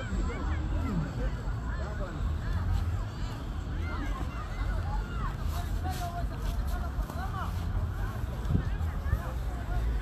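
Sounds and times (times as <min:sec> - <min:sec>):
crowd talking: 0:00.0 - 0:10.0
wind rumble on microphone: 0:07.6 - 0:10.0.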